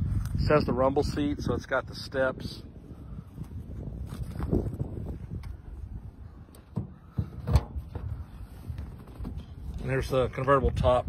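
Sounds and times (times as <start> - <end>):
wind: 0.0 - 11.0
handling noise: 4.0 - 10.0
car lid clunks and knocks: 6.6 - 8.3.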